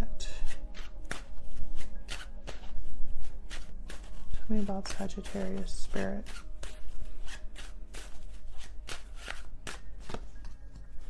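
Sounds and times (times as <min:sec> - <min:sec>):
soft background music: 0:00.0 - 0:11.0
cards being shuffled: 0:00.4 - 0:11.0.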